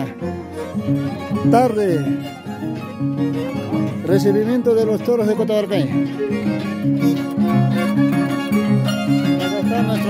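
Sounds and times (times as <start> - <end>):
folk dance music on harp: 0.0 - 10.0
violin: 0.0 - 10.0.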